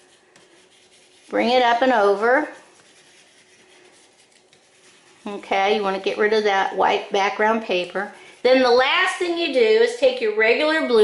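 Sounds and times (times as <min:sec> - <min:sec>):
crayon scribbling on paper: 0:00.0 - 0:09.9.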